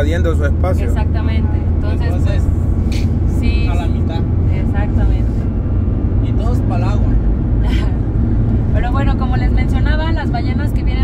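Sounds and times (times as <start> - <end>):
road and engine rumble: 0.0 - 11.0
woman speaking: 0.8 - 2.4, 3.3 - 5.4, 8.8 - 11.0.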